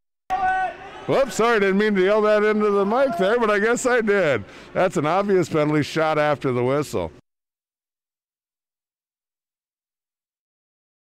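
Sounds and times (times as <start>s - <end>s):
man speaking: 1.1s - 7.2s.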